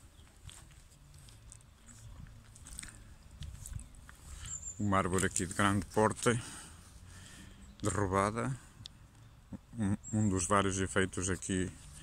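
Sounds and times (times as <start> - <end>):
faint footsteps: 0.0 - 8.2.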